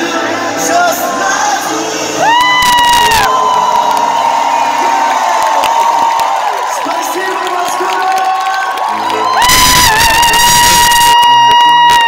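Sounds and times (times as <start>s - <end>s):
concert crowd cheering and screaming: 2.0s - 12.0s
high-pitched scream: 2.2s - 6.4s, 8.9s - 12.0s.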